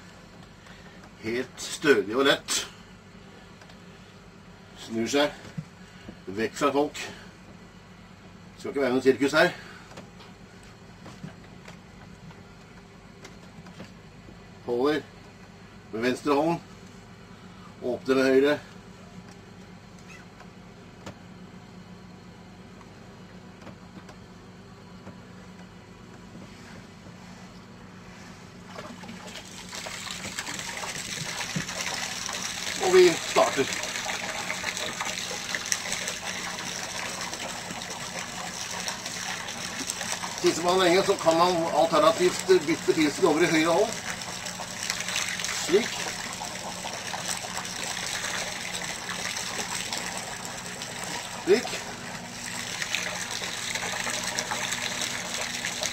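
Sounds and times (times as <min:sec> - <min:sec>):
low steady hum: 0:00.0 - 0:55.9
urine splashing into water: 0:28.8 - 0:55.9.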